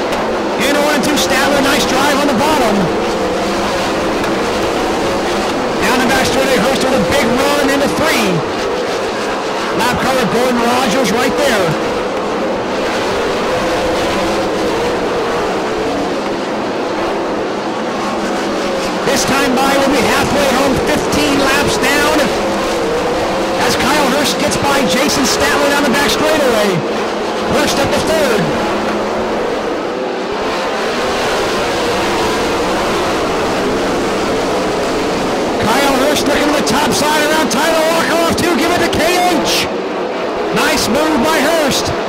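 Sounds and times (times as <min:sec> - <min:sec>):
racing car engines: 0:00.0 - 0:42.0.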